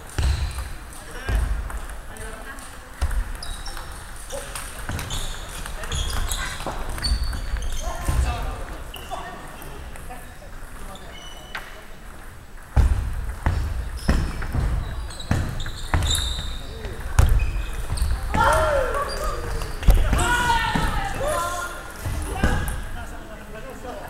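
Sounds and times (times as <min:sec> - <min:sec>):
shoe squeaks: 0:03.3 - 0:09.9, 0:10.9 - 0:11.9, 0:13.5 - 0:20.5
voices talking: 0:13.9 - 0:24.0.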